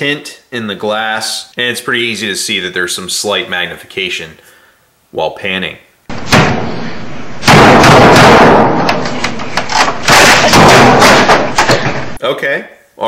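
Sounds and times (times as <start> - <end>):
computer equipment being smashed: 7.4 - 12.2.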